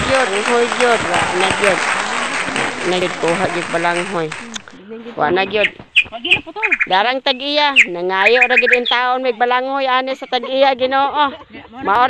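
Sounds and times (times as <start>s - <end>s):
voice chanting a syllable: 0.0s - 9.7s.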